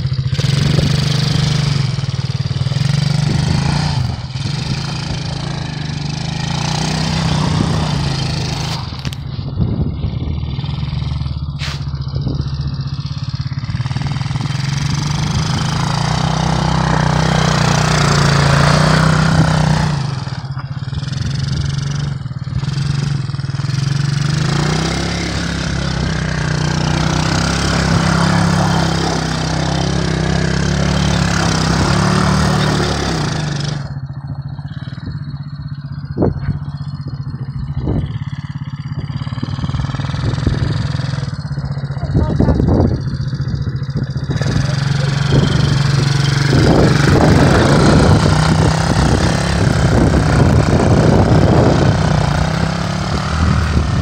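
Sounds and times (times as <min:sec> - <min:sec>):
atv engine revving: 0:00.0 - 0:54.0.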